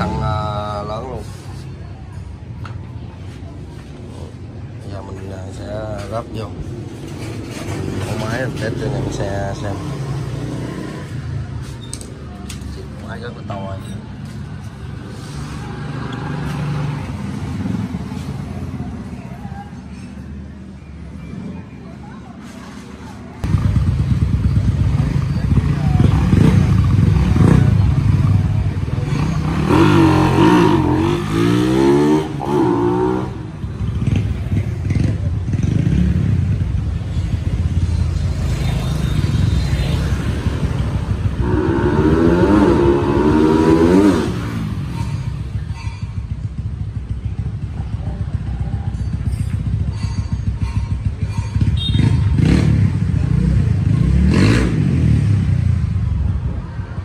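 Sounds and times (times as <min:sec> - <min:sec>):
motorcycle engine revving: 0:06.8 - 0:11.6, 0:23.4 - 0:56.8.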